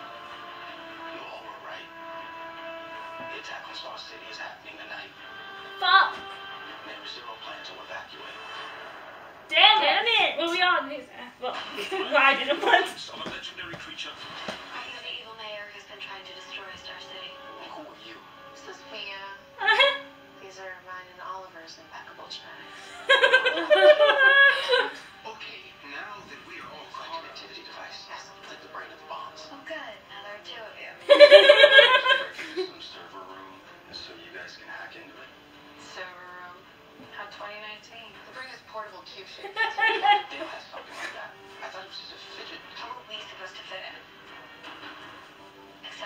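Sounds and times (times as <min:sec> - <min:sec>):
background music: 0:00.0 - 0:46.0
faint television dialogue: 0:00.0 - 0:46.0.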